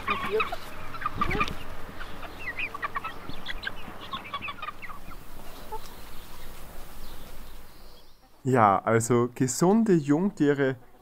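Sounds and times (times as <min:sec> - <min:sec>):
chickens clucking and calling: 0:00.0 - 0:11.0.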